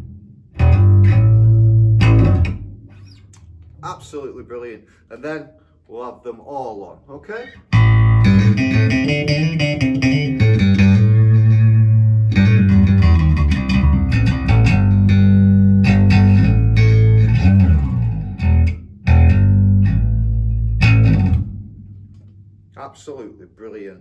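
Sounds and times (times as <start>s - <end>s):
electric bass plucked notes: 0.0s - 3.9s, 7.6s - 22.8s.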